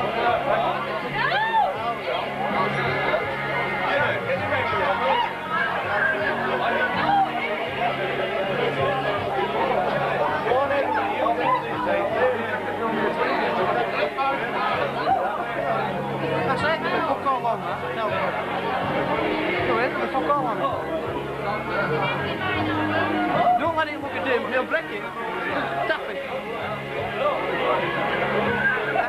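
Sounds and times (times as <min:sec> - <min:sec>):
background music: 0:00.0 - 0:29.0
crowd chatter: 0:00.0 - 0:29.0.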